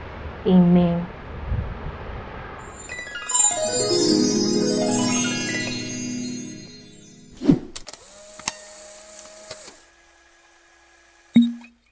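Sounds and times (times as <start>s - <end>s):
small electric motor whirring: 7.9s - 11.2s.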